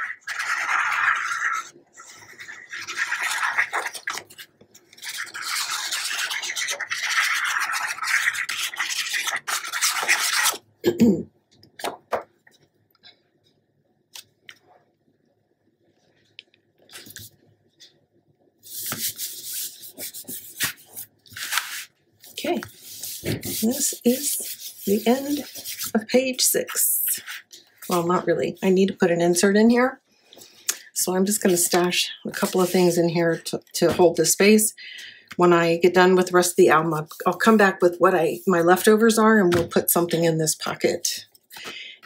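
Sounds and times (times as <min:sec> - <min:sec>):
paper rubbed by hand: 0:04.9 - 0:10.6, 0:18.6 - 0:25.9
glue tip scratching paper: 0:05.0 - 0:10.6.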